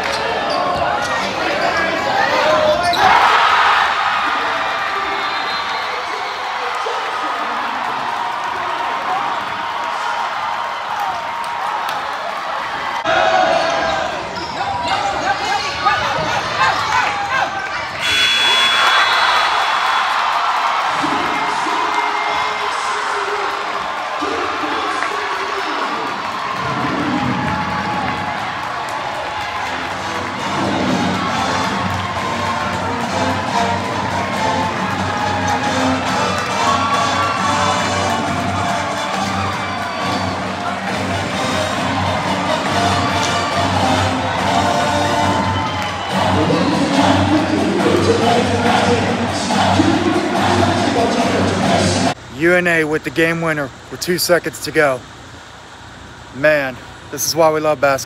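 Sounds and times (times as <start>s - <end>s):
crowd noise and voices: 0.0s - 58.0s.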